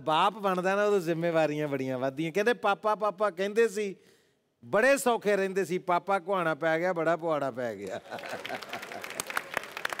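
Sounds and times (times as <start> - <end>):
audience applause: 8.0 - 10.0.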